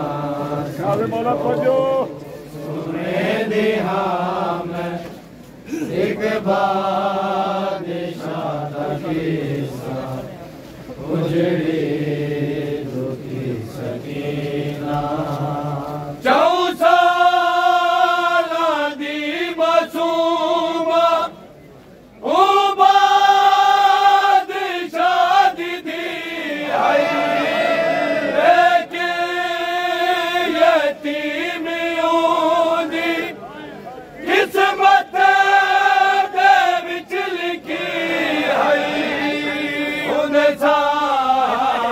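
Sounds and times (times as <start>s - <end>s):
men chanting a lament in unison: 0.0s - 10.3s, 11.0s - 21.4s, 22.2s - 33.4s, 34.2s - 41.9s.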